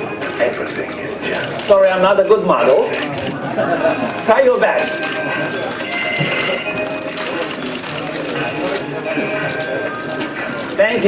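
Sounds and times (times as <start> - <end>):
music: 3.9 - 11.0.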